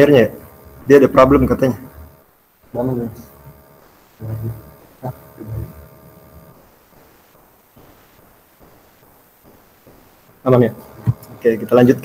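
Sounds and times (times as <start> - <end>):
steady hum: 0.0 - 12.0
short low vocal hums: 4.2 - 6.5.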